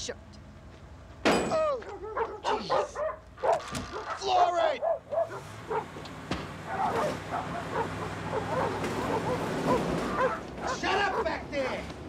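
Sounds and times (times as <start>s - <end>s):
dog barking and yelping: 1.7s - 6.0s, 6.6s - 11.4s.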